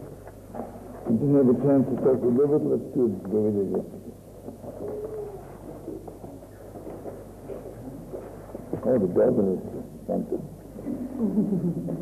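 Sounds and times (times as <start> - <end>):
soft cooing vocal sound: 4.8 - 5.7.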